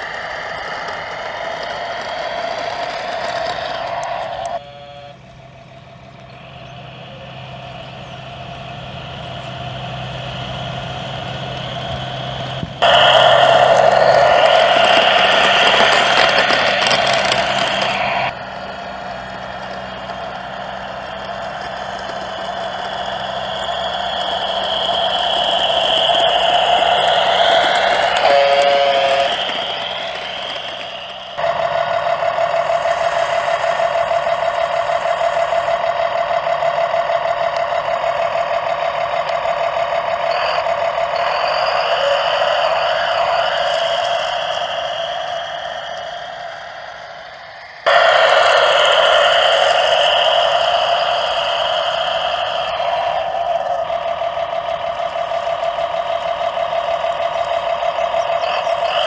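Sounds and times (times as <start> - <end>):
simulated diesel engine from speaker: 0.0 - 59.0
brief pitched tone: 19.2 - 31.4.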